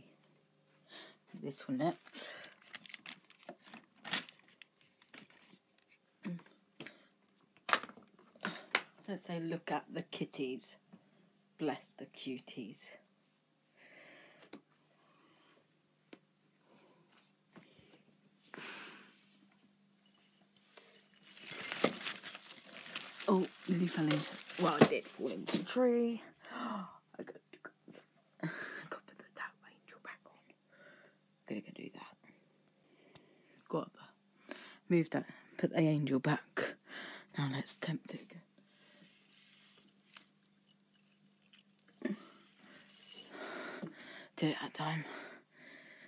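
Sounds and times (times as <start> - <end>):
tree branches and decorations rustling: 1.9 - 6.0, 20.0 - 26.0, 38.6 - 43.8
light clicks and clinks: 20.0 - 25.2, 39.2 - 44.0.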